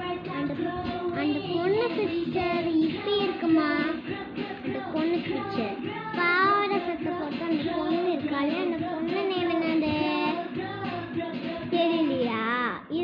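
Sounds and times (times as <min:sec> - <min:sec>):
child singing: 0:00.0 - 0:13.0.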